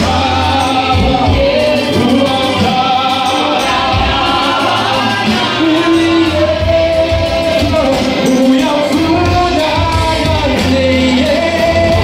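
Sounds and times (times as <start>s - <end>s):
congregation singing: 0.0s - 12.0s.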